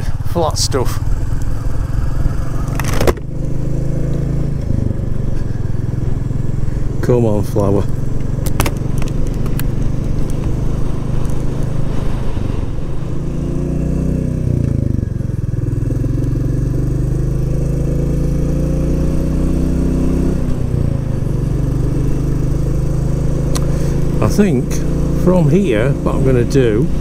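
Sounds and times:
motorcycle engine changing gear: 0:01.0 - 0:06.2, 0:07.4 - 0:11.7.

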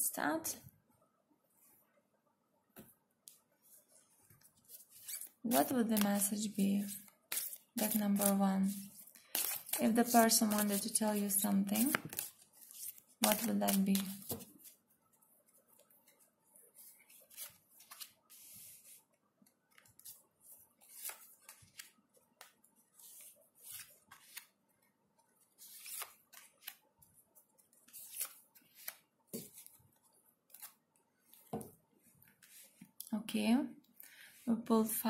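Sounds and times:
cards being shuffled: 0:04.6 - 0:14.8, 0:16.8 - 0:19.0, 0:20.8 - 0:24.6, 0:25.6 - 0:26.8, 0:27.8 - 0:29.8, 0:30.5 - 0:31.6.

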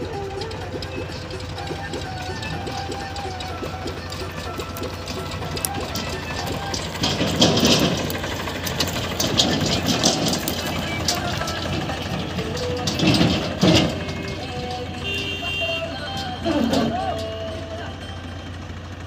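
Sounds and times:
crackling rattling noise: 0:00.0 - 0:19.0
song with singing voice: 0:00.0 - 0:19.0
tractor diesel engine running: 0:00.0 - 0:19.0.

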